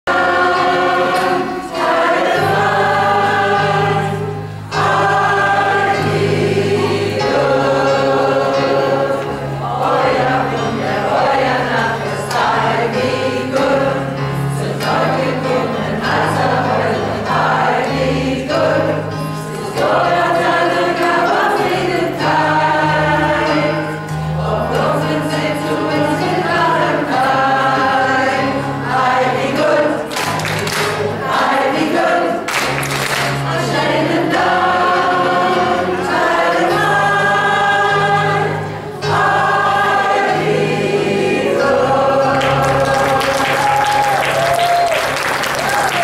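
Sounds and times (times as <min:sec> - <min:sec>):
mixed chorus singing: 0:00.0 - 0:46.0.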